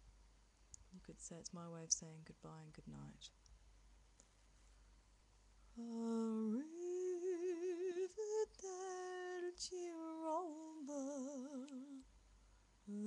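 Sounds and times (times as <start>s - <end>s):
woman singing unaccompanied: 5.8s - 12.1s.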